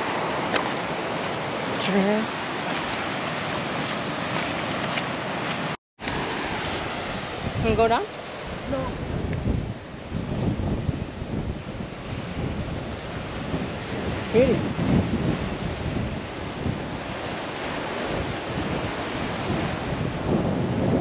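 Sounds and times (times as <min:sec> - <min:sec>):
surf washing on rocks: 0:00.0 - 0:21.0
wind buffeting microphone: 0:00.0 - 0:21.0.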